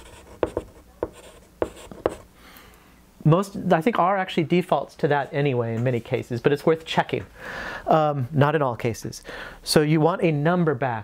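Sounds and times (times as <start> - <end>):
chalk scratching: 0.0 - 2.3
chalk tapping on blackboard: 0.0 - 2.3.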